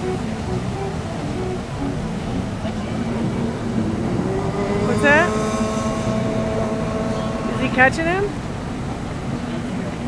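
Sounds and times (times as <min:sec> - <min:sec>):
jet ski engine whine rising: 0:00.0 - 0:09.9
jet ski engines droning: 0:00.0 - 0:10.0.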